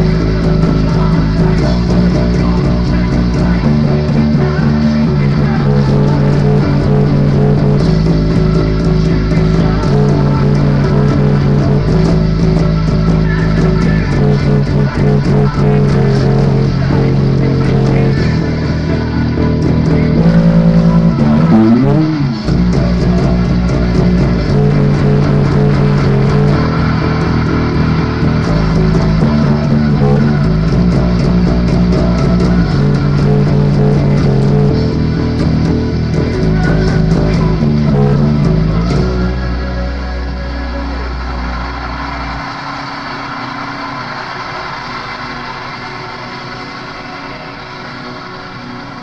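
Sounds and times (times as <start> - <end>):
rock band with drums: 0.0 - 39.4
electric bass guitar: 0.0 - 49.0.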